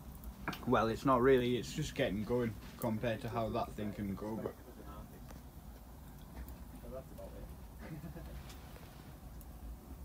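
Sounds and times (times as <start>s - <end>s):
sharp fire pops: 0.0s - 0.8s
log fire crackling: 0.0s - 10.0s.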